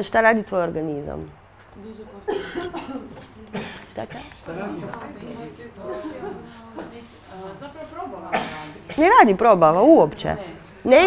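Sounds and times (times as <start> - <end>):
person coughing: 2.3 - 4.3, 8.3 - 9.0.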